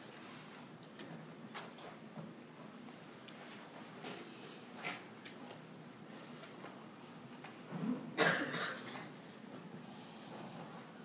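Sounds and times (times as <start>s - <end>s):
person coughing: 8.2s - 9.1s.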